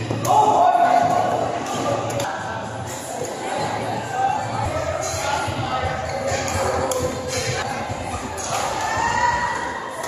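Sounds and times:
spectator chatter: 0:00.0 - 0:10.0.

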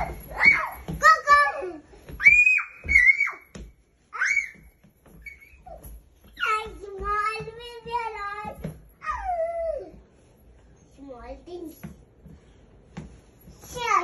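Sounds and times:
toddlers squealing: 0:02.2 - 0:03.5, 0:04.1 - 0:06.5.

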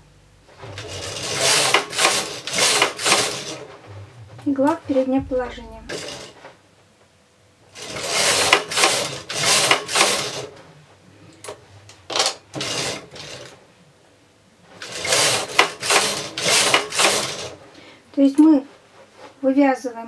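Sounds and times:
knitting machine carriage whirring: 0:00.5 - 0:06.6, 0:07.7 - 0:10.7, 0:11.4 - 0:13.6, 0:14.7 - 0:17.7.

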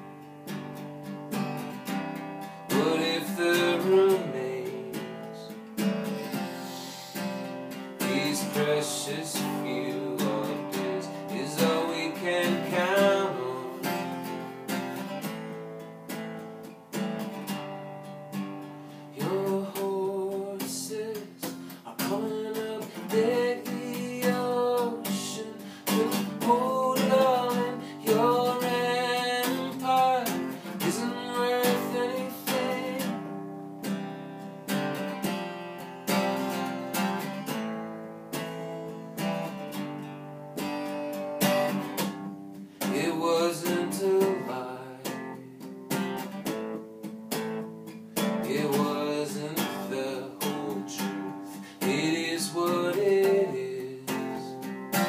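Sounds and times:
acoustic guitar strummed: 0:00.0 - 0:55.0
man singing: 0:02.7 - 0:14.6, 0:19.0 - 0:33.4, 0:42.8 - 0:45.7, 0:48.2 - 0:55.0.

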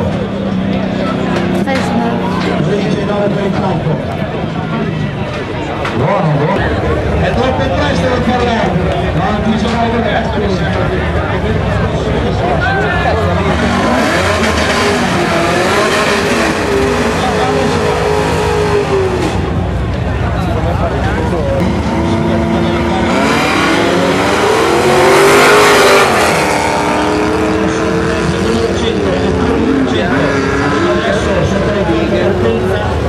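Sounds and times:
car engines revving: 0:00.0 - 0:33.0
engine and tyre noise: 0:00.0 - 0:33.0.

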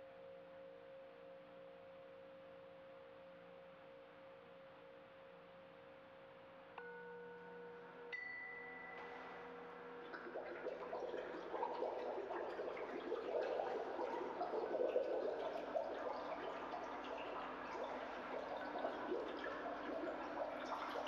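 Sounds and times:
faint steady hum: 0:00.0 - 0:21.0
water sloshing and gurgling: 0:09.0 - 0:21.0.

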